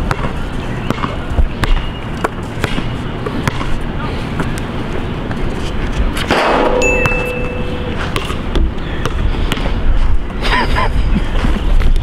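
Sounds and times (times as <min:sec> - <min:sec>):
metallic clang with ringing tone: 0:06.4 - 0:08.3.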